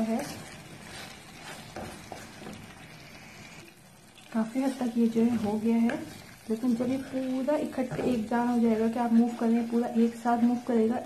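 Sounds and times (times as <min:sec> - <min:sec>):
wooden spoon scraping saucepan: 0:00.0 - 0:02.8, 0:04.6 - 0:10.2
faint sizzle: 0:00.0 - 0:11.0.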